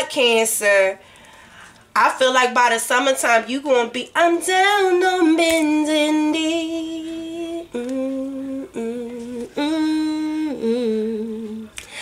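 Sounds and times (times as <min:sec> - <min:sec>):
woman singing unaccompanied: 0:02.0 - 0:11.8.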